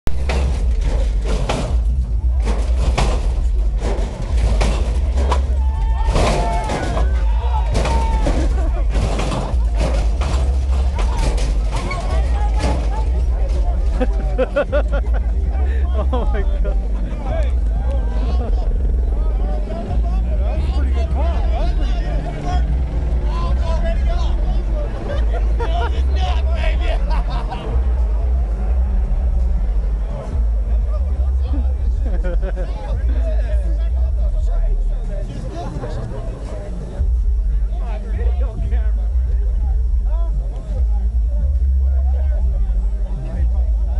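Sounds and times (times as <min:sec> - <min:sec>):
crowd talking and calling out: 0:00.0 - 0:43.9
loud bass-heavy music: 0:00.0 - 0:43.9
steady deep rumble: 0:00.0 - 0:43.9.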